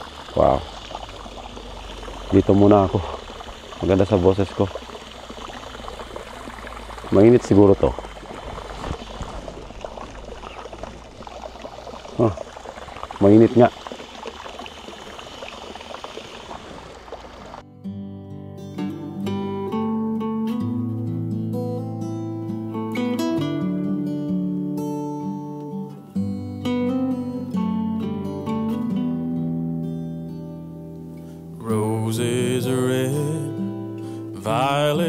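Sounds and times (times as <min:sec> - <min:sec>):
running water: 0:00.0 - 0:17.7, 0:31.0 - 0:35.0
acoustic guitar music: 0:17.6 - 0:35.0.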